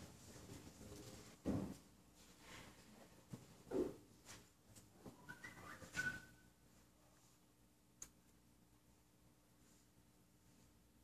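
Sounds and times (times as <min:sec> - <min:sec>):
high whistle-like tones: 0:05.2 - 0:06.6.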